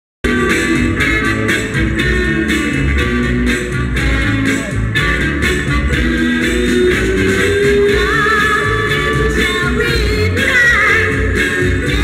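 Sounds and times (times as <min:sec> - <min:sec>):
soul music over sound system: 0:00.2 - 0:12.0.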